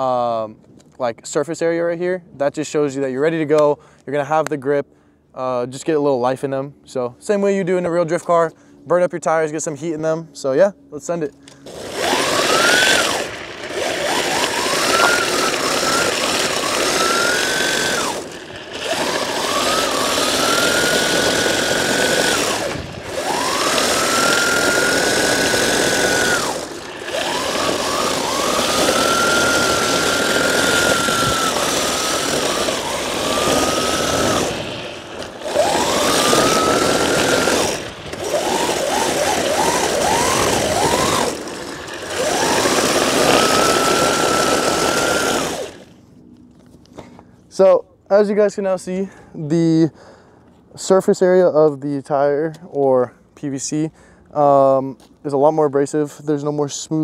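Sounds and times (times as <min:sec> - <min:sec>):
kart engine revving: 0:11.5 - 0:46.0.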